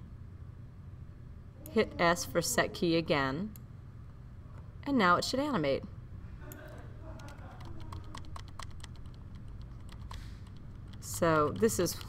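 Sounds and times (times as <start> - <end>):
low steady hum: 0.0 - 12.0
keyboard and mouse clicking: 7.2 - 12.0.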